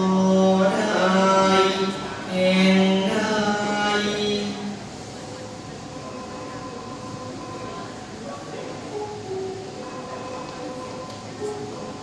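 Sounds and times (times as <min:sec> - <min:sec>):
recorded backing music: 0:06.4 - 0:12.0.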